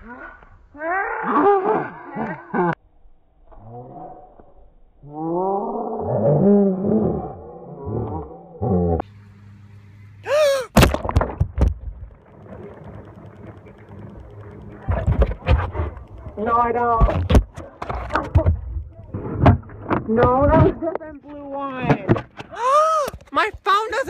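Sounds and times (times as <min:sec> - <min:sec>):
high scream: 0:10.2 - 0:10.8
people shouting and yelling: 0:10.3 - 0:10.8, 0:22.5 - 0:24.0.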